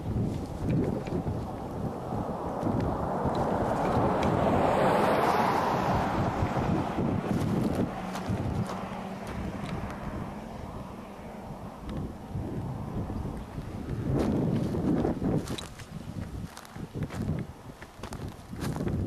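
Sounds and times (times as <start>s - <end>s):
vehicle passing on highway: 0.0s - 19.0s
wind buffeting microphone: 0.0s - 19.0s.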